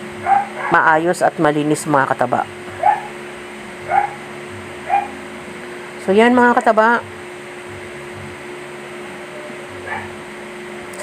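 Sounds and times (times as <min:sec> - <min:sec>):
low hum: 0:00.0 - 0:11.0
dog yipping and whimpering: 0:00.2 - 0:00.8, 0:02.8 - 0:03.2, 0:03.9 - 0:04.2, 0:04.9 - 0:05.2, 0:09.8 - 0:10.2.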